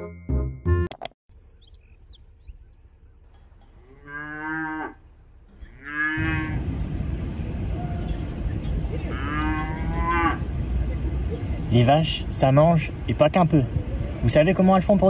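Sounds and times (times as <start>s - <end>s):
cattle mooing: 3.7s - 6.8s, 8.0s - 10.6s
steady background noise: 4.8s - 15.0s.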